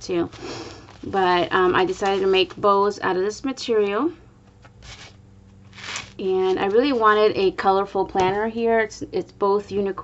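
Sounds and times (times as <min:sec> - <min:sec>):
ribbon rustling in hands: 0:00.3 - 0:02.8, 0:04.8 - 0:07.2.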